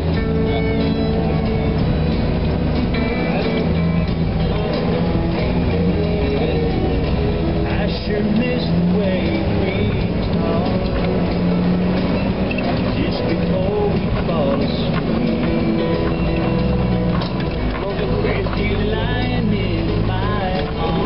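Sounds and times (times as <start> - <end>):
engines running at low revs: 0.0 - 21.0
music: 0.0 - 21.0
people's voices: 0.0 - 21.0.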